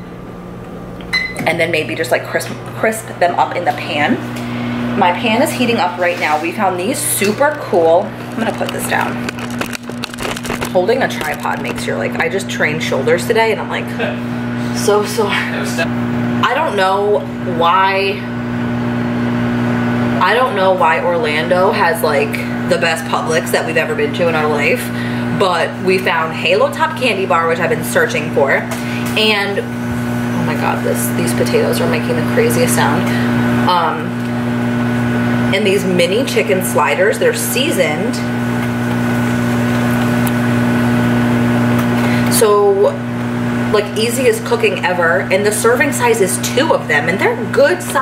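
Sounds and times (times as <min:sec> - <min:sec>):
microwave oven hum: 0:00.0 - 0:48.0.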